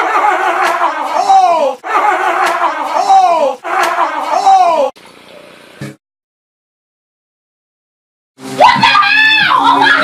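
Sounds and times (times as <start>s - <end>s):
person screaming: 0.0s - 5.0s.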